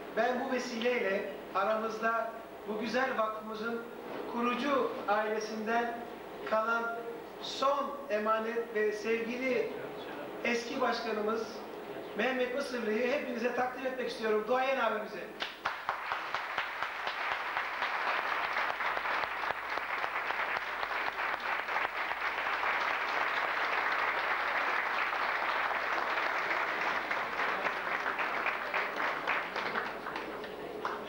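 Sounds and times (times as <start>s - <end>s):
crowd applauding: 15.4s - 31.0s.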